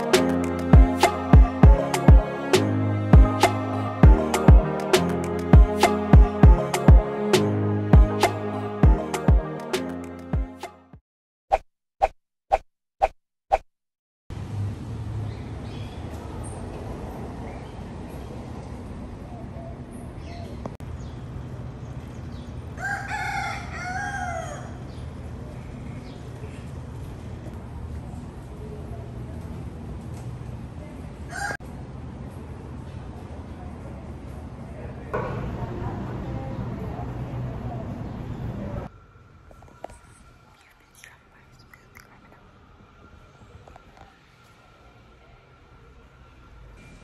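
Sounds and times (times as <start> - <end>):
rooster crowing: 22.8 - 24.9, 31.3 - 31.6
lip and tongue mouth noises: 40.6 - 42.4.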